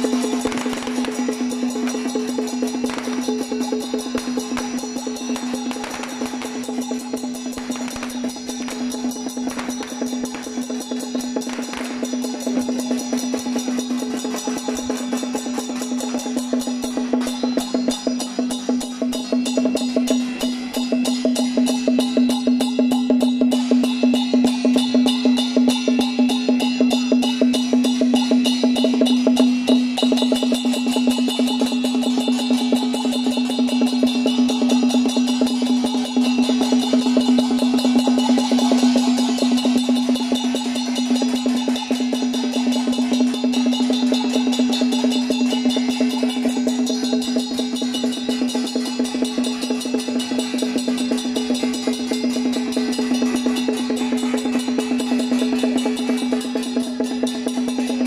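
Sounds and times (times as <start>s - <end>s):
fast drum strokes: 0.0s - 58.0s
wood block clacks: 0.0s - 58.0s.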